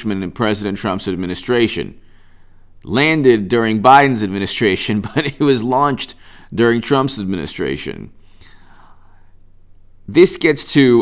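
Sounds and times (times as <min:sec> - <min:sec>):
low electrical hum: 0:00.0 - 0:11.0
soft intake of breath: 0:02.0 - 0:02.8, 0:06.2 - 0:06.5, 0:08.2 - 0:09.5.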